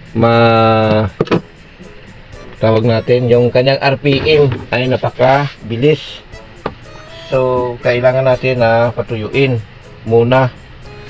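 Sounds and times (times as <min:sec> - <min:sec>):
man holding long syllable: 0:05.0 - 0:08.8.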